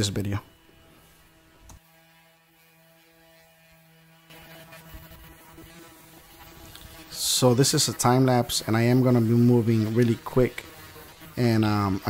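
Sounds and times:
disc sanding metal hiss: 0.0s - 12.0s
electric sander humming: 0.0s - 12.0s.

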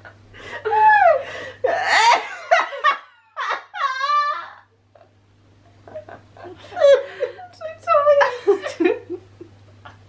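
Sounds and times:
women giggling: 1.8s - 5.1s, 5.7s - 10.0s.

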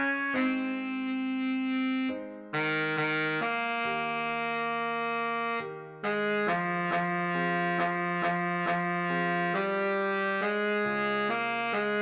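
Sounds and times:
slow baritone saxophone melody: 0.0s - 12.0s.

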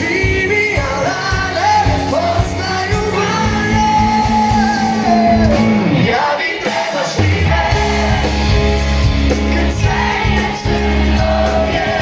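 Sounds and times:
man singing lead vocal: 0.0s - 12.0s
pop-rock band playing: 0.0s - 12.0s.

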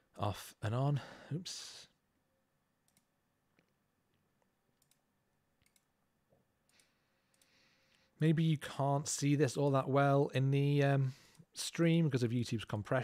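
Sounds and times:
faint computer mouse clicks: 4.8s - 5.0s, 5.6s - 5.9s.

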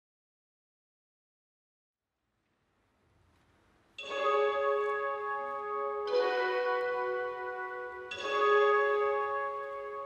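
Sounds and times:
bell-like chimes: 4.0s - 5.3s, 6.1s - 10.0s.

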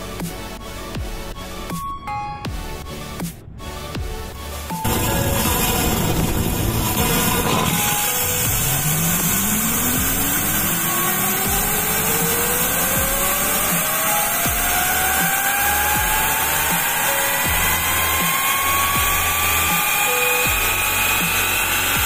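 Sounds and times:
turbine whine rising in pitch: 2.7s - 22.0s
steam hissing: 4.8s - 22.0s.

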